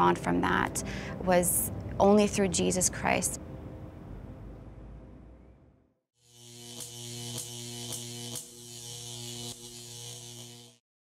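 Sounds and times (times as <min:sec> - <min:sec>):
neon sign humming and buzzing: 0:06.2 - 0:10.8.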